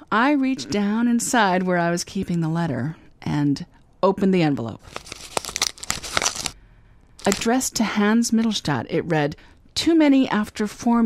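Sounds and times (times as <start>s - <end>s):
paper envelope tearing: 4.8s - 6.6s, 7.2s - 7.5s.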